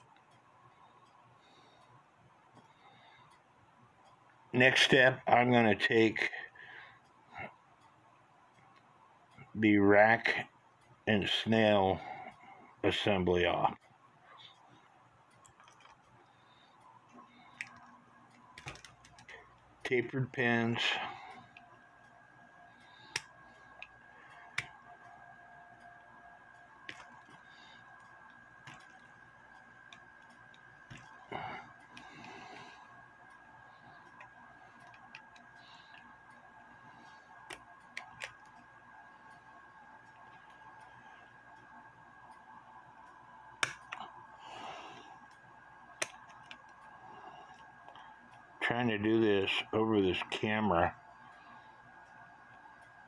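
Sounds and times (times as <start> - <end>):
faint high whine: 0.0 - 53.0.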